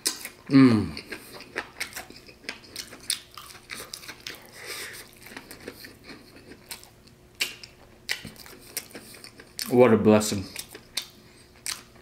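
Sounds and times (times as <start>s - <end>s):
chewing: 0.0s - 9.8s, 10.4s - 12.0s.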